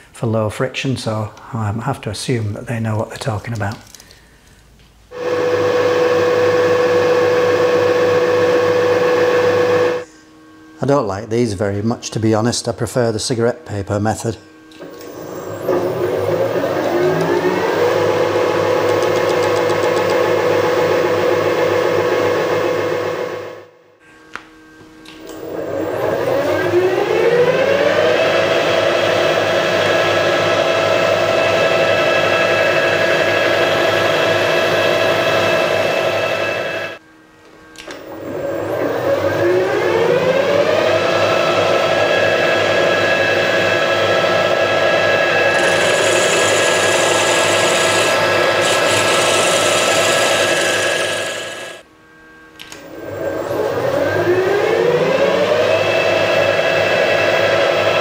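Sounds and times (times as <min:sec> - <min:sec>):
milling machine spindle whining: 0:05.1 - 0:10.1, 0:12.0 - 0:23.6, 0:25.2 - 0:37.0, 0:37.8 - 0:51.9, 0:52.7 - 0:58.0.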